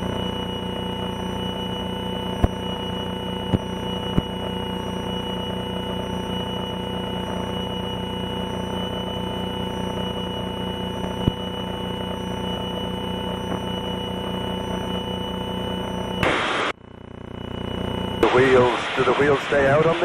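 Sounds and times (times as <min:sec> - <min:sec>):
propeller plane engine droning: 0:00.0 - 0:20.0.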